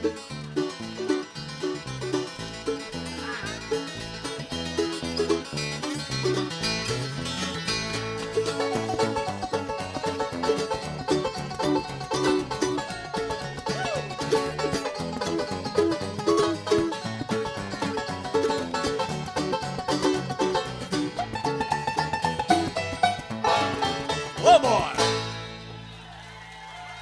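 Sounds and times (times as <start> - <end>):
banjo picking fast runs: 0.0 - 26.0
bass notes: 0.0 - 26.0
acoustic guitar: 0.0 - 26.1.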